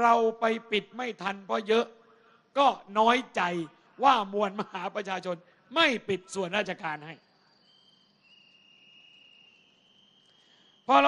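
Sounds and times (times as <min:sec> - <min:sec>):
man's amplified speech: 0:00.0 - 0:01.9, 0:02.6 - 0:07.2
crickets trilling: 0:06.5 - 0:11.0.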